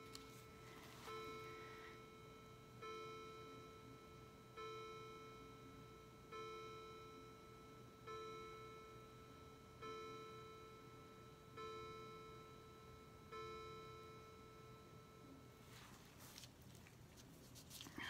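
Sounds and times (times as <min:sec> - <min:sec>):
faint bell-like chime: 0:00.0 - 0:16.0.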